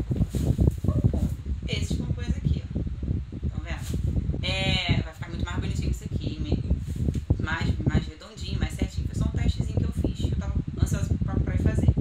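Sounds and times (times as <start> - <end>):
woman talking: 0.9 - 2.8, 3.4 - 12.0.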